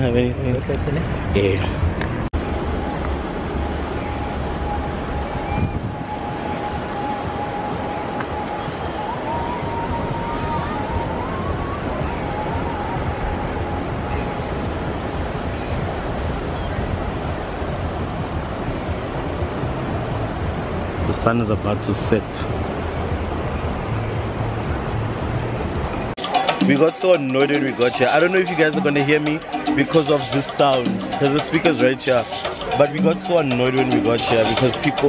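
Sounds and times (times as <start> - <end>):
wind and road noise: 0.0 - 26.2
faint wavering music: 2.4 - 17.7, 26.2 - 35.0.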